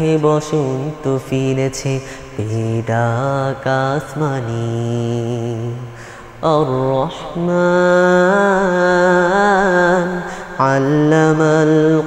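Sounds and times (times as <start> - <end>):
person chant-like singing: 0.0 - 12.0.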